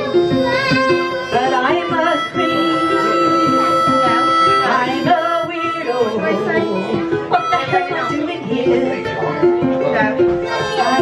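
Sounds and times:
harmonica melody: 0:00.0 - 0:11.0
strummed ukulele chords: 0:00.0 - 0:11.0.

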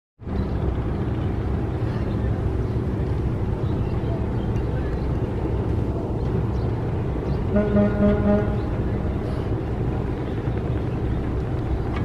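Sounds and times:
boat diesel engines rumbling: 0:00.2 - 0:12.0
hiss of water and wind: 0:00.2 - 0:12.0.

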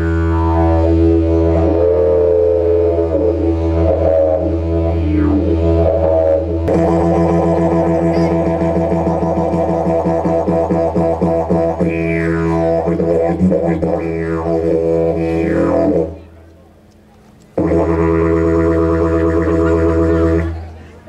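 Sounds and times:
didgeridoo drone: 0:00.0 - 0:16.6, 0:17.6 - 0:20.8.

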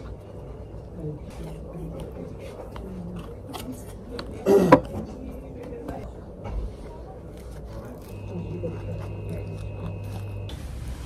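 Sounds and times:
steady electrical hum: 0:07.1 - 0:11.0
toast crunching: 0:07.4 - 0:10.5.

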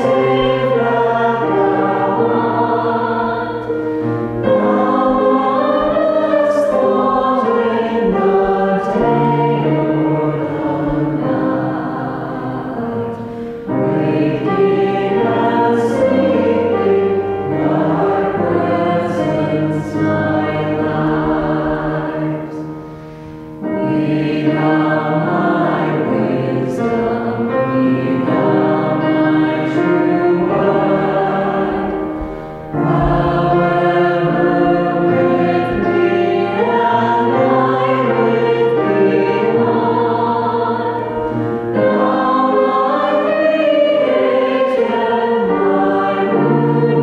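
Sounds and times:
choir singing a hymn: 0:00.0 - 0:47.0
piano accompaniment: 0:00.0 - 0:47.0.

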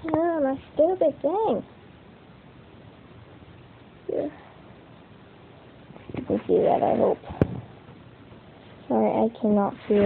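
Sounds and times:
room hiss: 0:00.0 - 0:10.0.

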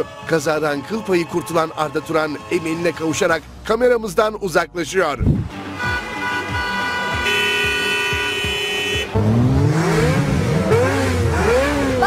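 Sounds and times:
vehicle horns honking: 0:05.6 - 0:09.4.

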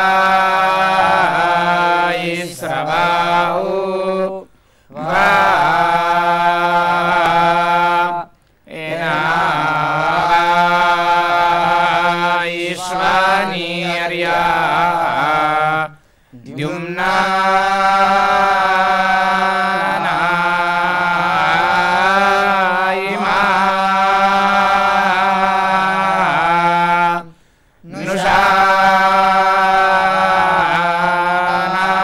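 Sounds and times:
men chanting a hymn in unison: 0:00.0 - 0:32.0.

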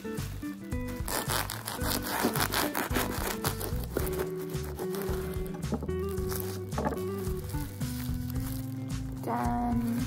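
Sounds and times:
background music: 0:00.0 - 0:10.0
knife sawing through sandwich: 0:01.0 - 0:05.2.

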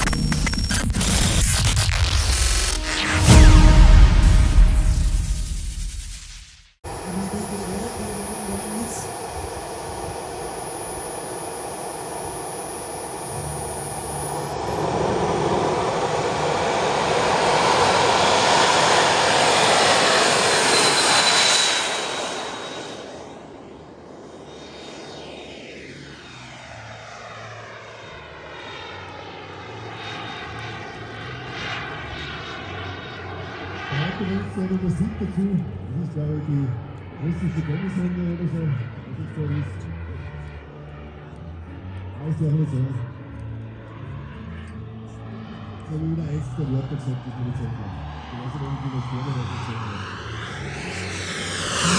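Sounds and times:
jet turbine engines whining: 0:06.9 - 0:51.9.

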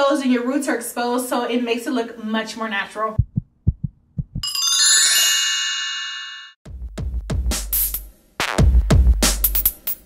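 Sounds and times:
low thumps: 0:03.2 - 0:04.5.

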